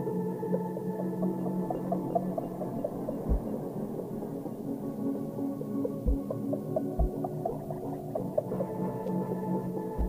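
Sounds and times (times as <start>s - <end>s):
low synth drones: 0.0s - 10.0s.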